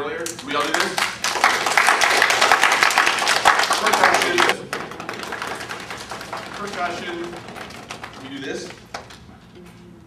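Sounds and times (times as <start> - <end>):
people clapping: 0.2 - 9.3.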